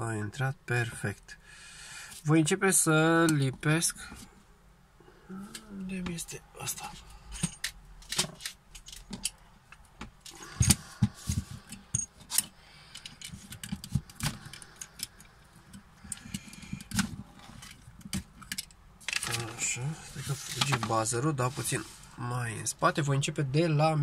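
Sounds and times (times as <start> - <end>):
clicks and knocks of handling: 6.8 - 19.7.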